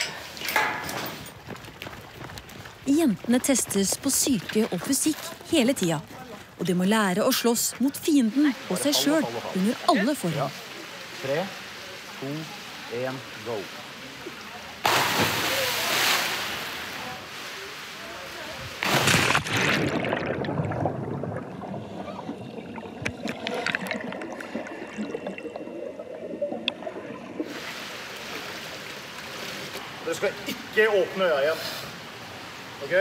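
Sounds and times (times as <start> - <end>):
splash into swimming pool: 14.8 - 18.1, 18.7 - 21.4
muffled underwater bubbling: 19.6 - 27.6.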